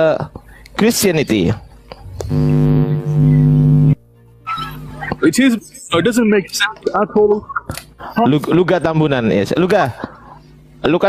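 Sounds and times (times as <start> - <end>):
steady held tone: 2.0 - 4.0.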